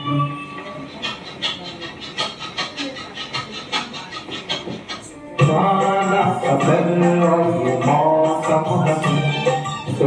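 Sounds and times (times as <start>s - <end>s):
light percussion rhythm: 0.0s - 10.0s.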